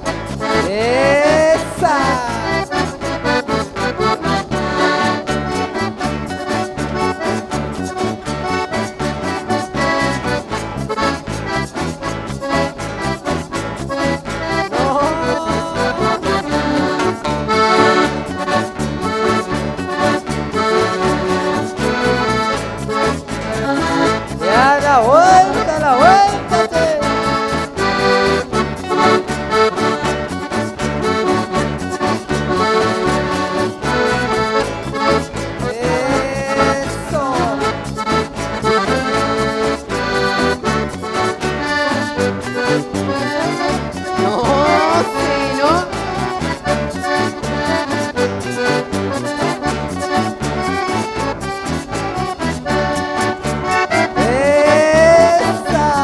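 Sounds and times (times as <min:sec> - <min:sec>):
accordion folk waltz: 0:00.0 - 0:56.0.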